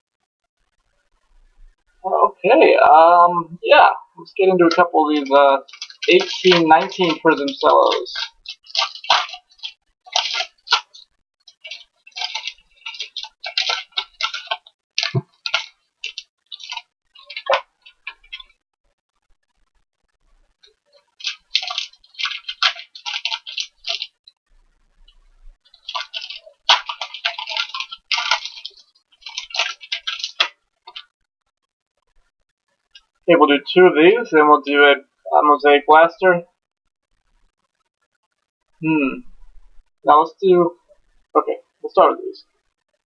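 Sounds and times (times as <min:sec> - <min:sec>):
plastic wrappers crinkling and tearing: 0:04.7 - 0:18.5, 0:20.7 - 0:24.3, 0:25.6 - 0:31.1.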